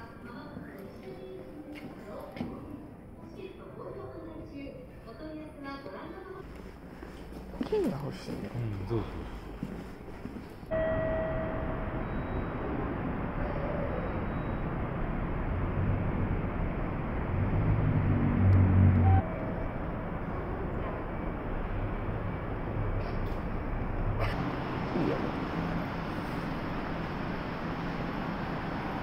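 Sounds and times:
distant traffic: 6.5s - 29.0s.

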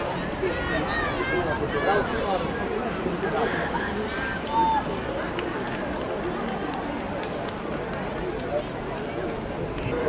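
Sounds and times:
background chatter of people: 0.0s - 10.0s.

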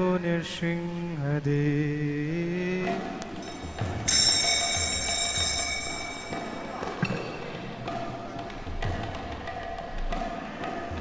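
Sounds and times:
metal bell ringing: 3.4s - 7.4s.

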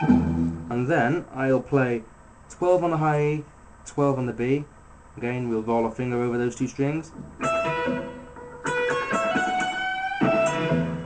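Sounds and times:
electric guitar blues lead: 0.0s - 0.7s, 7.1s - 11.0s.

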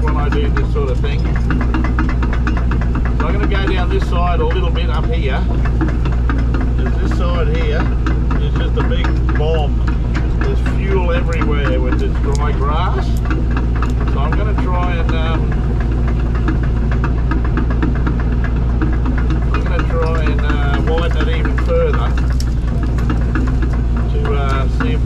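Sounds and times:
diesel engine running: 0.0s - 25.0s.

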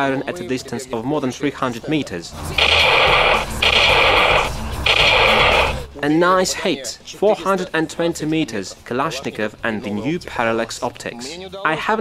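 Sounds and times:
simulated gunfire from toy speaker: 2.6s - 5.8s.

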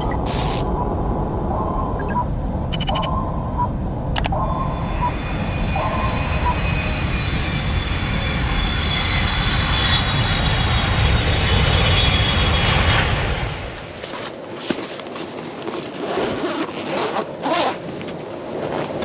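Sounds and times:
short electronic beeps: 0.0s - 0.6s, 1.9s - 5.2s
jet-like rumble: 0.0s - 14.0s.

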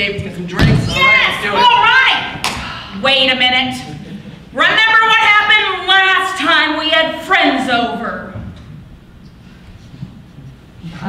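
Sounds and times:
thud: 0.6s - 1.1s.

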